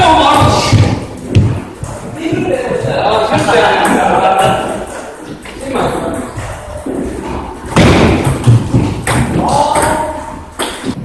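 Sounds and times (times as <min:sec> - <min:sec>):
table tennis ball hits and bounces: 0:07.7 - 0:11.0.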